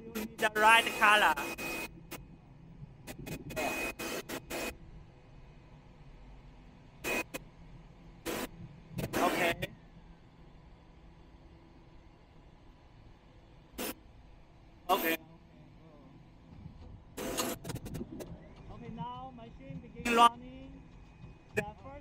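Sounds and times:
machinery humming: 0.0s - 22.0s.

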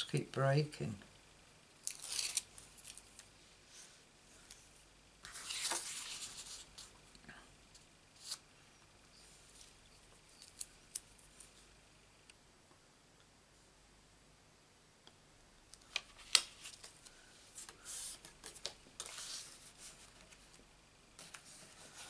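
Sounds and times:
tape liner peeling: 1.8s - 3.0s.

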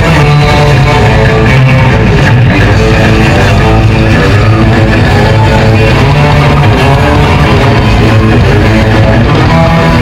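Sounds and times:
electric guitars: 0.0s - 10.0s
low bass: 0.0s - 10.0s.

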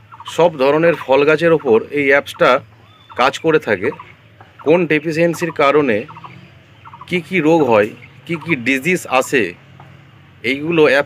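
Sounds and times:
man speaking: 0.3s - 2.6s, 3.2s - 4.0s, 4.6s - 6.2s, 7.1s - 9.6s, 10.4s - 11.0s.

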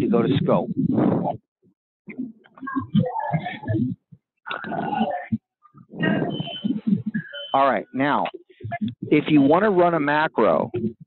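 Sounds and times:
indistinct voice over phone line: 9.1s - 10.5s.

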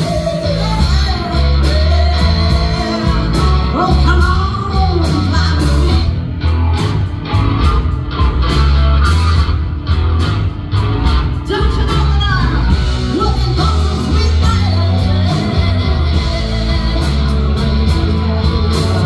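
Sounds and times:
electric guitar lead: 0.0s - 19.0s
heavy bass line: 0.0s - 19.0s
steady drum beat: 0.0s - 19.0s.

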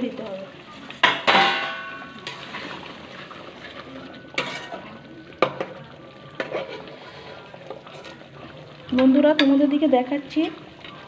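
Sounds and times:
low sizzle: 0.0s - 11.0s
spatula stirring thick gravy: 2.1s - 5.7s, 6.4s - 9.2s.

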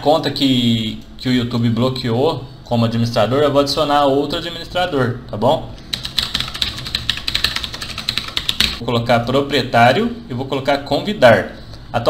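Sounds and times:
fast keyboard typing: 5.9s - 8.8s.

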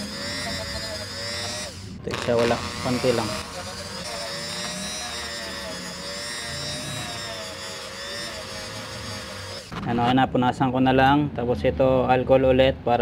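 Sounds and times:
rotary tool grinding metal: 0.0s - 10.1s.

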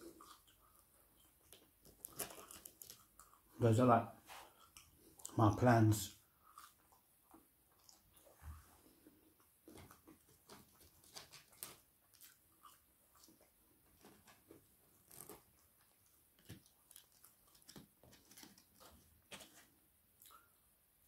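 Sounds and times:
person chewing chips: 0.0s - 3.5s, 6.4s - 7.1s, 9.0s - 13.5s, 15.0s - 19.1s.

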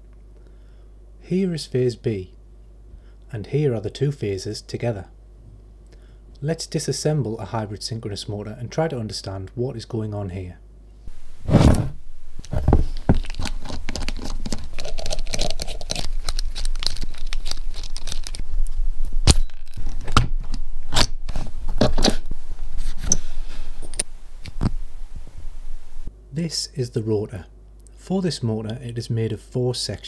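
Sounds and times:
metal parts scraping: 11.4s - 18.5s, 22.9s - 24.7s.

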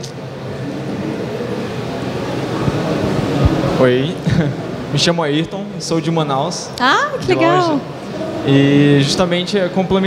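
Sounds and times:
distant murmur of voices: 0.0s - 10.0s
hall background hum: 0.0s - 10.0s.

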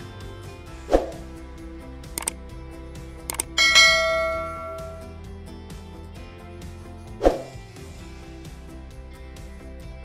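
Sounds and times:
quick clicks: 2.2s - 2.4s, 3.3s - 3.6s
bright bell ding: 3.4s - 5.2s.

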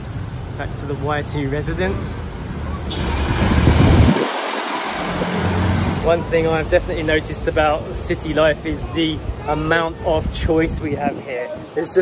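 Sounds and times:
steady low traffic rumble: 0.0s - 12.0s
vehicle passing close: 2.0s - 6.8s.

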